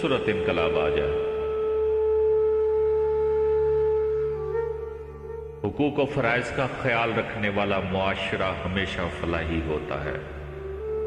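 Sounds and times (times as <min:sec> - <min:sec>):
steady pure musical note: 0:00.0 - 0:11.0.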